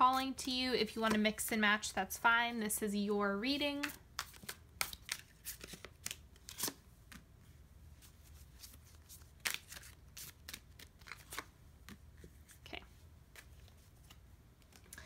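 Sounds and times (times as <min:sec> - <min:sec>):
cards clicking and slapping: 0:03.8 - 0:07.3, 0:08.6 - 0:12.0.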